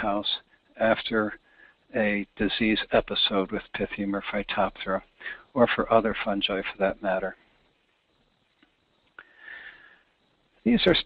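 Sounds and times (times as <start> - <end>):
faint click: 8.5 - 9.3
breath in through the nose: 9.2 - 10.1.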